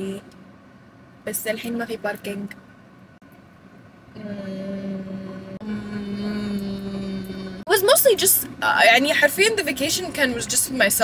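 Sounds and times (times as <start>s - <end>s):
woman humming: 4.2s - 7.8s.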